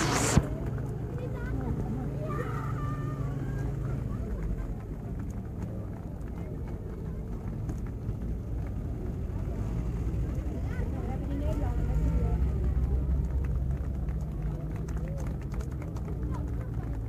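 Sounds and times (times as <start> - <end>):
crowd voices: 0.0 - 17.0
vehicle engine rumbling past: 0.0 - 17.0.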